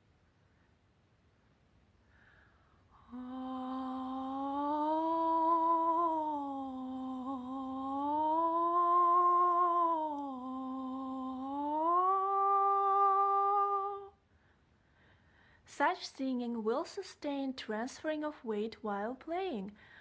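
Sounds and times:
woman humming sliding pitch: 0:03.0 - 0:14.1.

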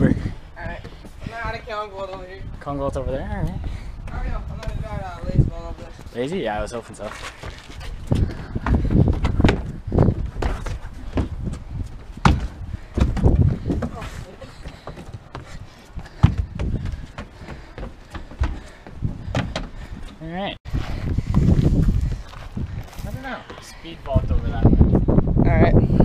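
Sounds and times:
footsteps and thumps on wooden deck: 0:00.0 - 0:06.1, 0:06.9 - 0:24.4.

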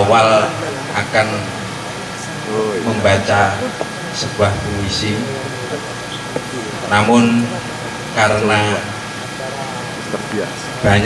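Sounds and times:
faint voice sounds: 0:00.0 - 0:11.0
man speaking through microphone: 0:00.0 - 0:11.0
sound system hum and hiss: 0:00.0 - 0:11.0.

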